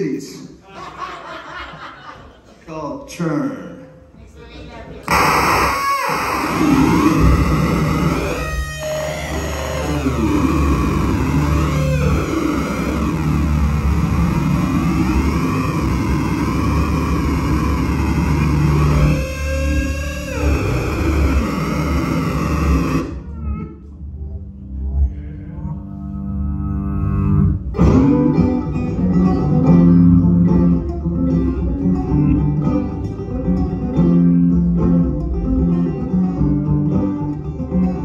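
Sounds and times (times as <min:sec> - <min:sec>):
amplified banjo playing: 0:27.1 - 0:38.0.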